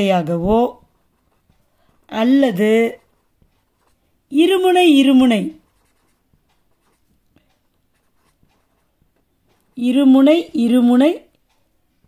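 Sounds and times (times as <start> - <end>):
pen scratching on paper: 0.0 - 10.4.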